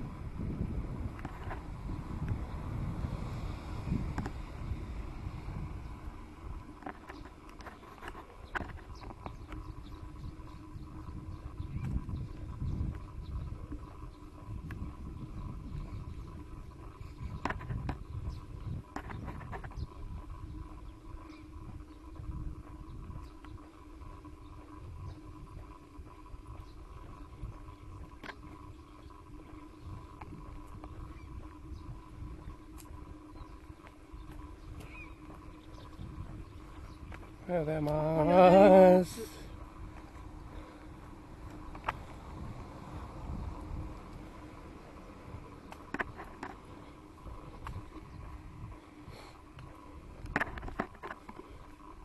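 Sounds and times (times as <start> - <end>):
faint steady hum: 0.0 - 52.0
wind rumbling on microphone: 0.0 - 52.0
faint chirp: 30.8 - 37.6.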